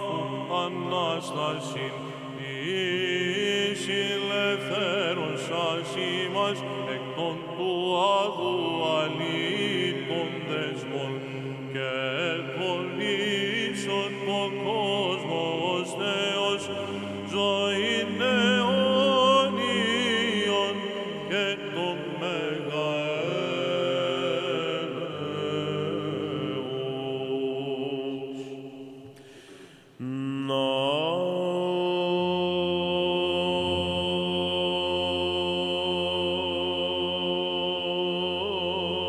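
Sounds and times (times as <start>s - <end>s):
person chanting melismatically: 0.0s - 39.0s.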